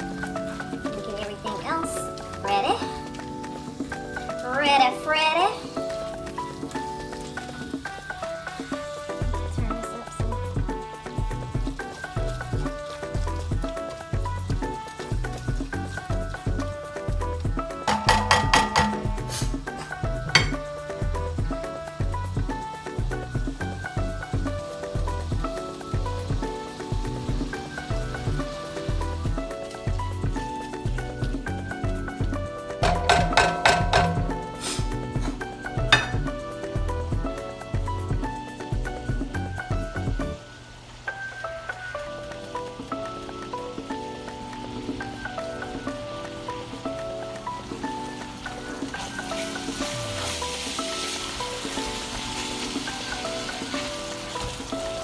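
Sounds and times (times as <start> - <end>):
background music with steady beat: 0.0 - 55.0
ground beef sizzling: 0.0 - 55.0
spatula stirring in skillet: 11.1 - 32.2, 32.8 - 36.8, 47.7 - 55.0.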